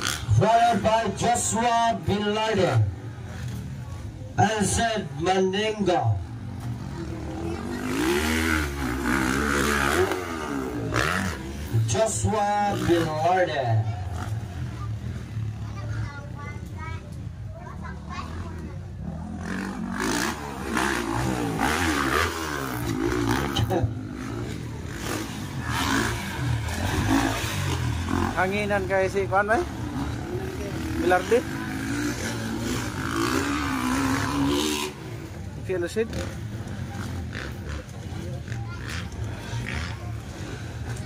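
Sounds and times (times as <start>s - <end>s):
dirt bike engines revving: 0.0s - 41.0s
people's voices: 0.0s - 41.0s.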